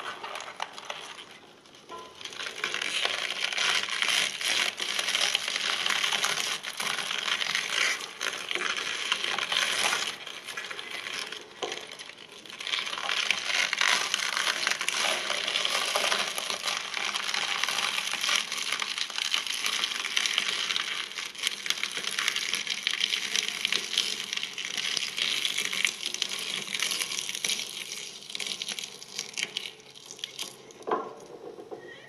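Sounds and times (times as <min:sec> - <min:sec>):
shredder crunching and snapping: 0:00.0 - 0:30.7.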